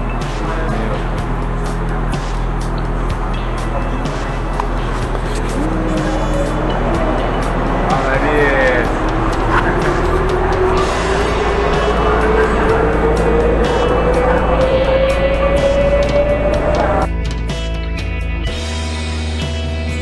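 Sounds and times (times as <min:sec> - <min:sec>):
monorail train rumbling: 0:00.0 - 0:17.1
background music: 0:00.0 - 0:20.0
rising motor whine: 0:02.8 - 0:17.1.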